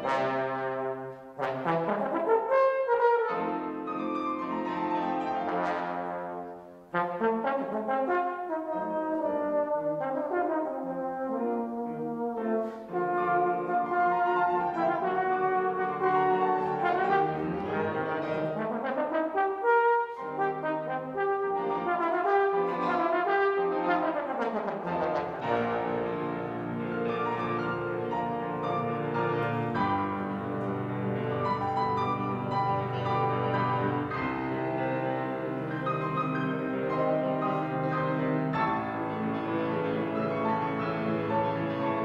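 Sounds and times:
trombone solo: 0:00.0 - 0:03.7, 0:05.2 - 0:26.3
piano accompaniment: 0:00.0 - 0:42.0.

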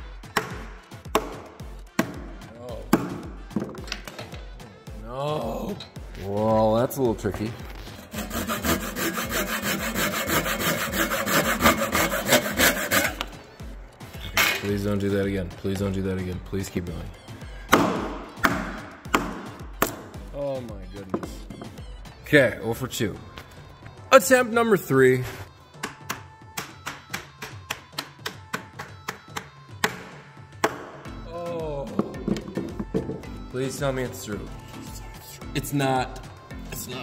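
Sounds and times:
background music with steady beat: 0:00.0 - 0:37.0
hammer striking wooden peg: 0:00.4 - 0:02.3, 0:17.7 - 0:20.2, 0:29.4 - 0:31.0.

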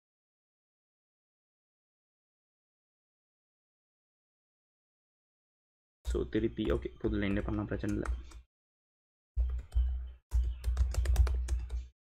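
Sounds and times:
typing on computer keyboard: 0:06.6 - 0:08.4, 0:09.4 - 0:11.9.

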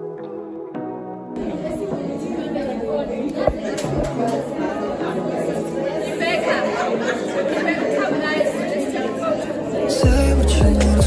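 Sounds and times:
women's voices chattering: 0:01.3 - 0:11.0.

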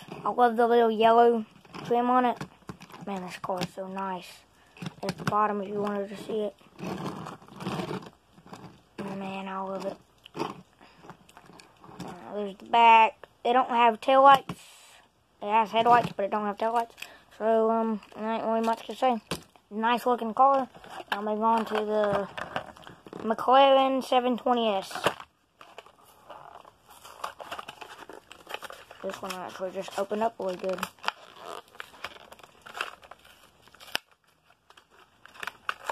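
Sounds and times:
toy car rustling and scraping: 0:00.0 - 0:12.6, 0:15.6 - 0:35.9
plastic packaging crinkling and tearing: 0:15.6 - 0:35.9.

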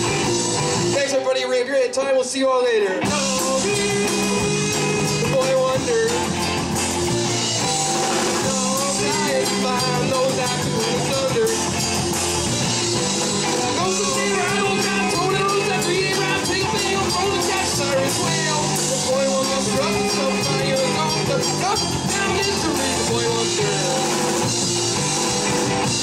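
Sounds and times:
electric guitar: 0:00.0 - 0:01.3, 0:02.9 - 0:26.0
bending sliding lead guitar line: 0:00.0 - 0:01.7, 0:02.7 - 0:26.0
drums: 0:00.0 - 0:02.0, 0:02.9 - 0:26.0
keyboard: 0:00.0 - 0:26.0.

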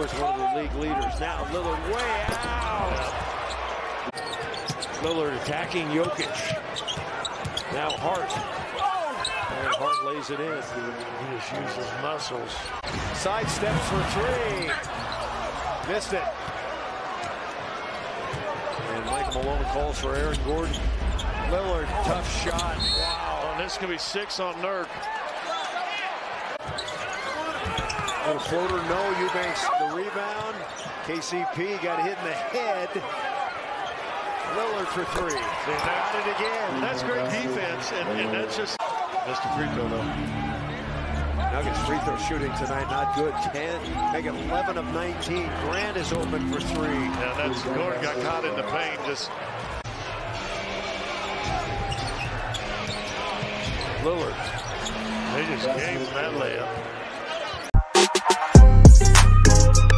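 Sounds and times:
murmur of crowd voices: 0:00.0 - 0:59.9.

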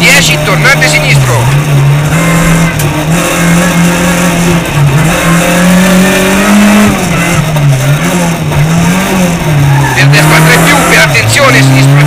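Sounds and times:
car engine revving from inside cabin: 0:00.0 - 0:12.0.

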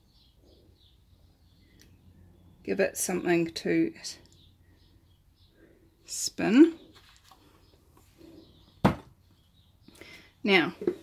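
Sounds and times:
faint handling noise: 0:06.9 - 0:08.2
plastic bottle knocking on surface: 0:08.8 - 0:09.1.

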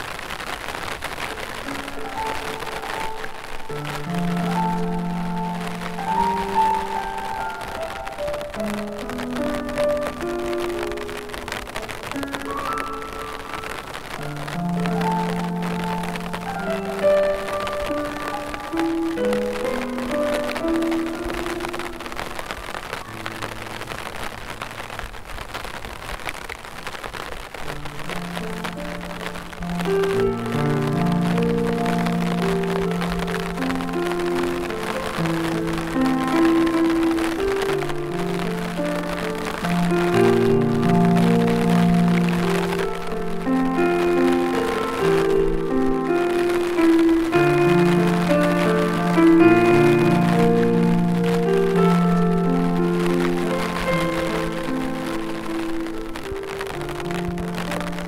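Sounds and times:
gentle piano music: 0:00.0 - 0:58.0
steady rainfall: 0:00.0 - 0:58.0.

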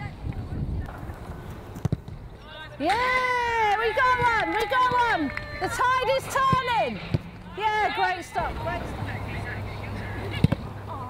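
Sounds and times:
football being kicked: 0:01.8 - 0:02.2.

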